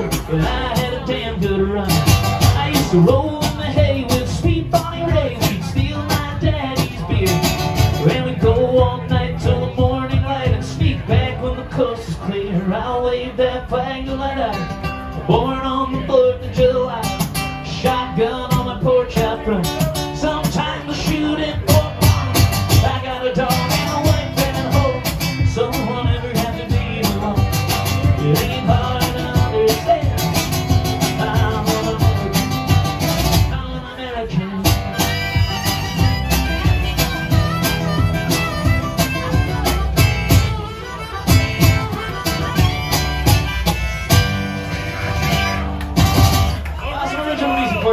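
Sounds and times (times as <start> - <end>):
acoustic guitar strumming: 0.0 - 46.8
harmonica playing held notes: 34.9 - 46.1.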